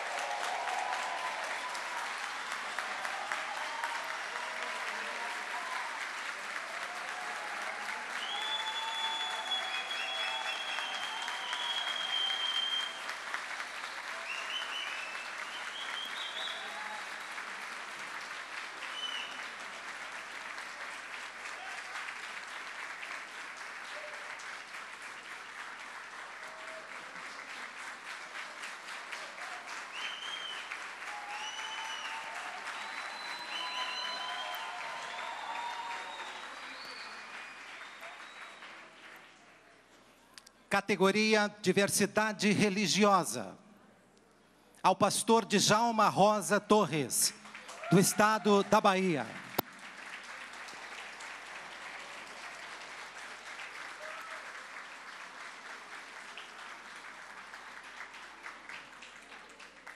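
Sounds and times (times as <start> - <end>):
voices cheering: 0.0 - 13.0, 14.0 - 17.3, 31.0 - 37.4, 47.7 - 49.4
audience applauding: 0.0 - 39.8, 45.0 - 59.9.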